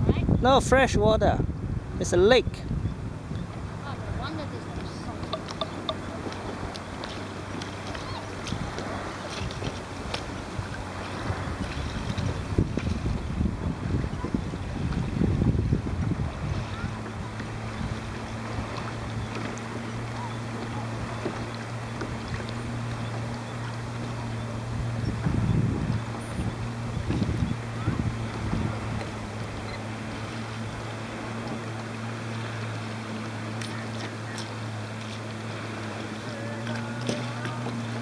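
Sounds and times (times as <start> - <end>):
boat motor humming: 0.0 - 38.0
rushing water: 0.0 - 38.0
wind on microphone: 0.0 - 38.0.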